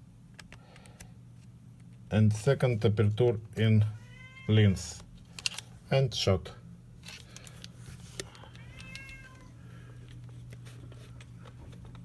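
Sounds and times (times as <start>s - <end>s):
cat meowing: 4.0s - 4.6s, 8.4s - 9.5s.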